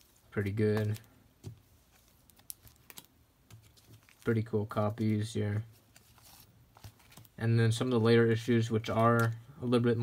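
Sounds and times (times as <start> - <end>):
comic books clicking while handled: 0.4 - 4.3, 6.8 - 7.4, 8.9 - 9.4.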